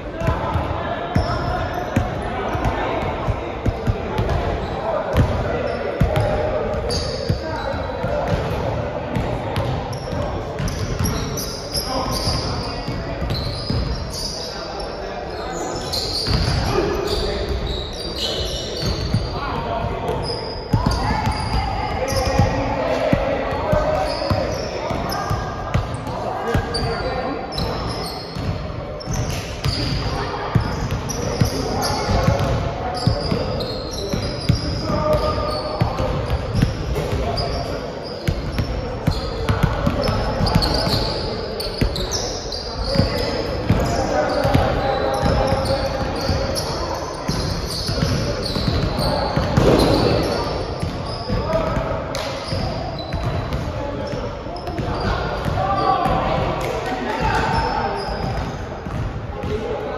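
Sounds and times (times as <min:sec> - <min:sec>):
players' voices: 0:00.0 - 0:59.9
sneakers squeaking: 0:00.1 - 0:59.9.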